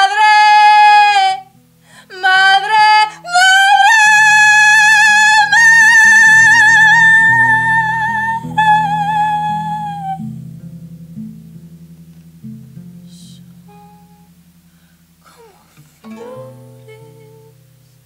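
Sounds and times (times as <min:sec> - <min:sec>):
woman singing high notes: 0:00.0 - 0:01.5, 0:02.1 - 0:10.2, 0:13.1 - 0:14.3, 0:15.2 - 0:17.6
low plucked string notes: 0:05.4 - 0:18.0.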